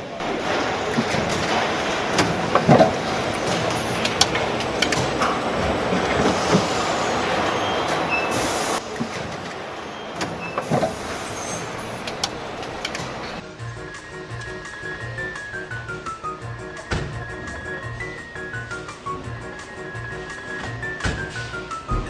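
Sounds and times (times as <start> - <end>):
factory mechanical din: 0.0 - 22.0
metallic clanks and knocks: 0.2 - 13.4
compressed air hiss: 4.9 - 9.0, 10.0 - 13.4.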